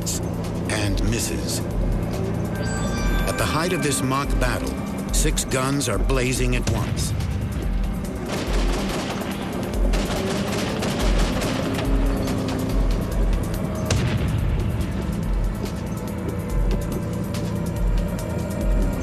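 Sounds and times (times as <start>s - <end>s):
documentary music with low beat: 0.0s - 19.0s
tank gunfire shots: 8.2s - 14.7s.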